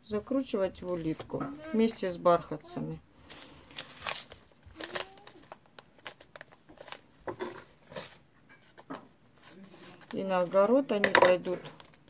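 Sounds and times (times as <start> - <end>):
paper packets rustling: 3.2 - 12.0.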